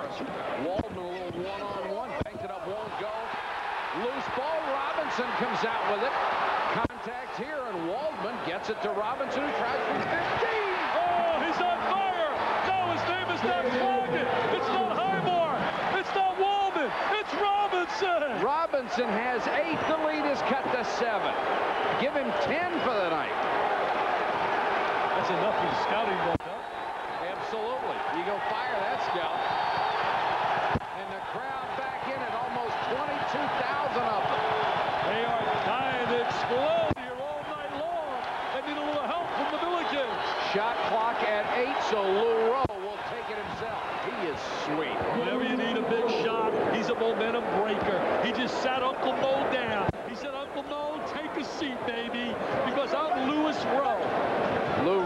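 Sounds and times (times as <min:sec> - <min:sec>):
arena crowd voices: 0:00.0 - 0:55.0.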